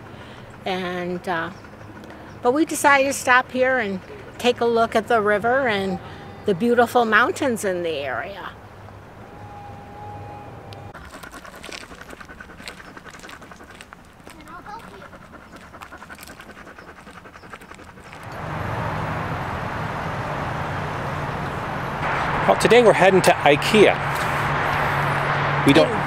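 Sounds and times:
dog panting: 0.0 - 7.9, 11.0 - 18.4
steady rushing noise with hum: 21.0 - 26.0.

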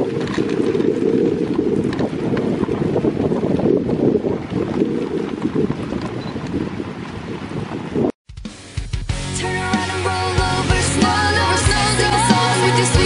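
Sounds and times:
sled running on snow: 0.0 - 8.1
wind buffeting microphone: 0.0 - 8.2.

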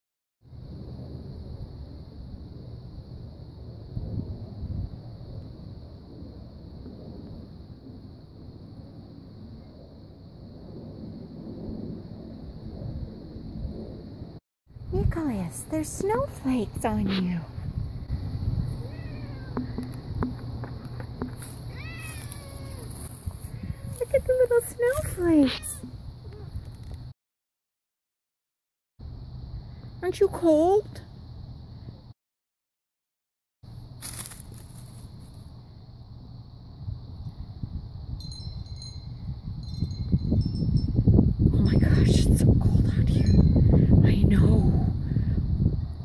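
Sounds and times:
low microphone rumble: 10.6 - 21.8
cat meowing: 18.7 - 19.6, 21.7 - 23.0, 25.4 - 26.5
high tinkling chimes: 38.2 - 41.1.

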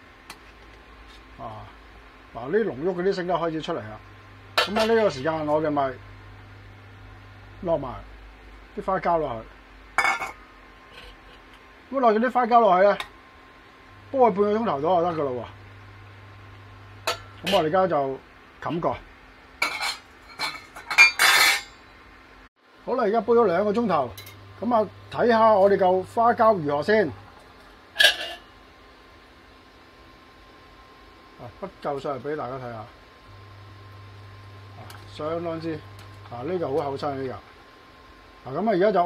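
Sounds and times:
faint steady hum: 0.0 - 39.0.

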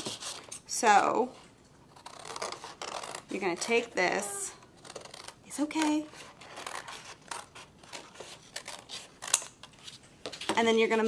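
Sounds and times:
scissors cutting paper: 1.9 - 10.6.

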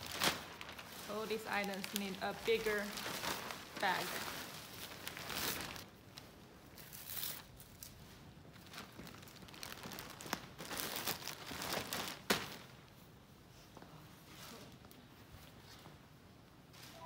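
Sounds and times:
plastic mailer bag crinkling: 0.0 - 5.9, 8.6 - 12.7.

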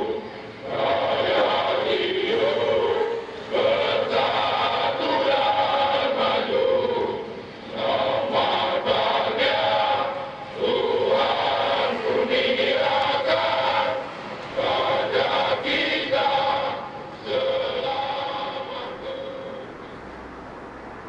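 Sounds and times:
men singing a slow chant: 0.0 - 19.9.

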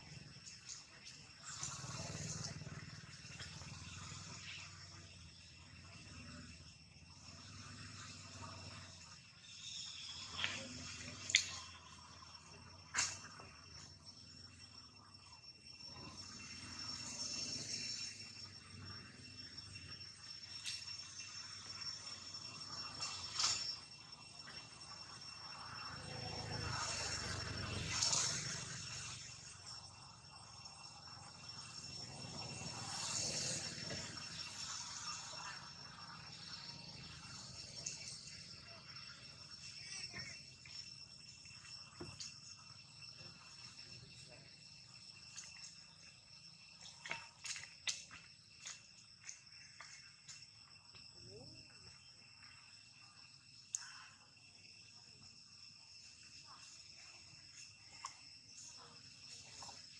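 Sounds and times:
high insect drone: 0.0 - 59.9.

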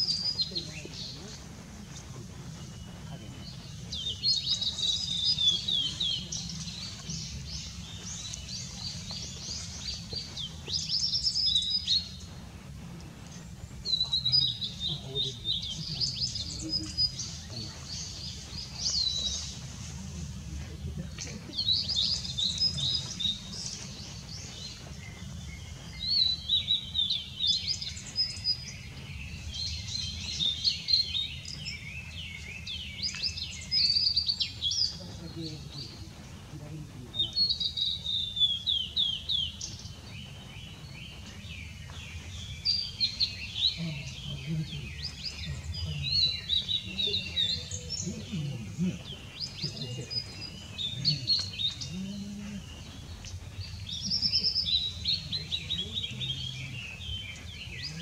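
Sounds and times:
bird singing whistles and trills: 1.9 - 12.4, 21.1 - 36.5, 37.1 - 58.0.

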